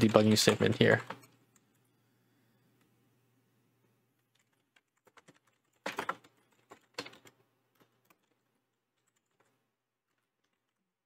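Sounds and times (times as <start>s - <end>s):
typing on computer keyboard: 0.0s - 1.8s, 4.2s - 11.0s.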